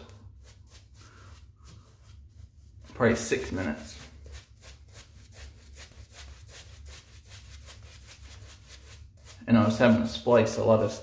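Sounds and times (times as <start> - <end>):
shaving brush on stubble: 0.2 - 11.0.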